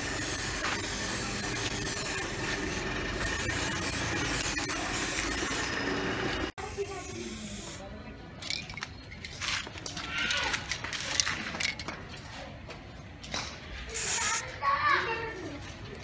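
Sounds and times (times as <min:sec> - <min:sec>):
spray paint can hissing: 0:00.0 - 0:06.0, 0:06.6 - 0:07.9, 0:13.9 - 0:14.4.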